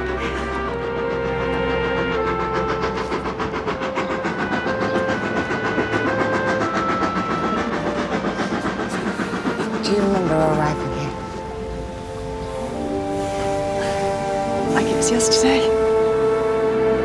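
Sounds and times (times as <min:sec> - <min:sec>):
orchestral film score: 0:00.0 - 0:17.0
steam locomotive chuffing: 0:00.0 - 0:17.0.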